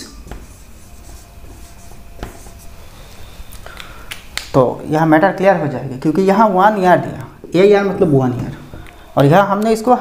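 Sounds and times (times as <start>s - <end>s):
marker pen scratching on whiteboard: 0.2s - 2.8s.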